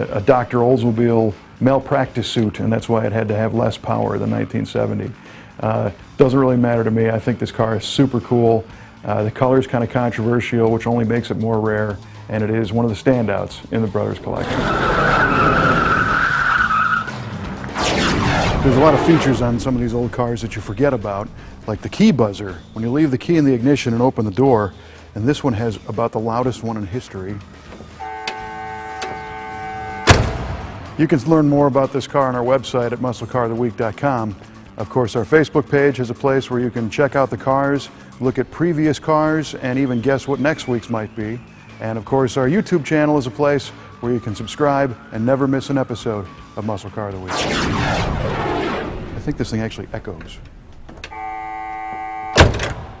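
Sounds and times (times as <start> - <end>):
car key warning buzzer: 28.0 - 30.4, 51.0 - 53.0
car door shutting with a thud: 30.0 - 30.7, 52.3 - 53.0.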